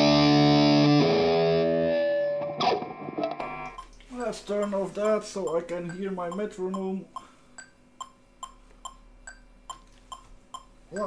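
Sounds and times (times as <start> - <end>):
metronome clicking: 3.3 - 11.0
faint steady hum: 3.4 - 11.0.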